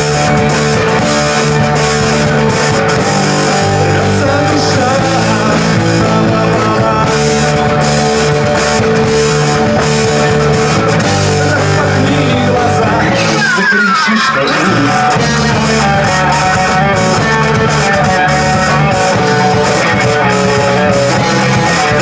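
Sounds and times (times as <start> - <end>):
drums and cymbals: 0.0 - 22.0
electric guitar through amplifier: 0.0 - 22.0.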